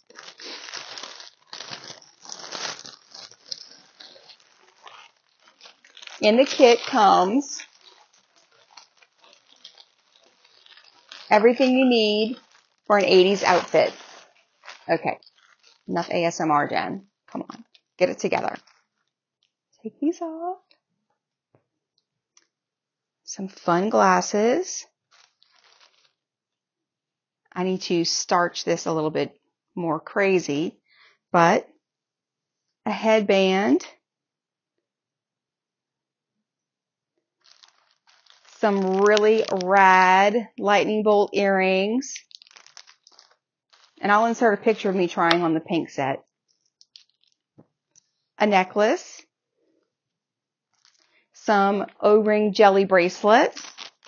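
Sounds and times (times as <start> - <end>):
plastic bag crinkling: 0.0 - 19.1, 25.1 - 26.2, 37.4 - 48.3, 50.7 - 51.2, 53.2 - 54.0.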